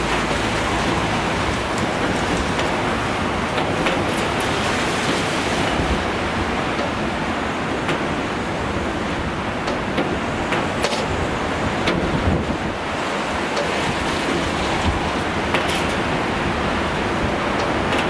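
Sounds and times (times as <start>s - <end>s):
surf breaking against sea wall: 0.0s - 18.0s
wind buffeting microphone: 0.0s - 18.0s.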